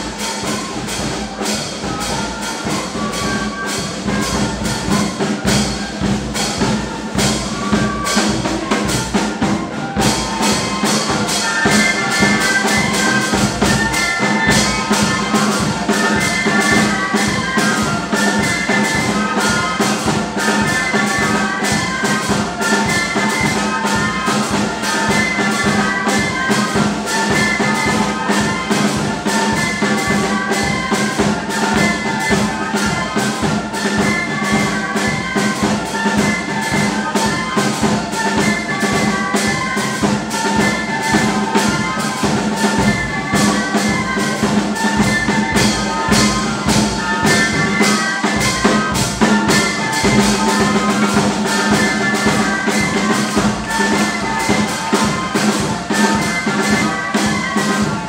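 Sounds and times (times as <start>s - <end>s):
brass band music: 0.0s - 58.0s
drums fast steady beat: 0.0s - 58.0s.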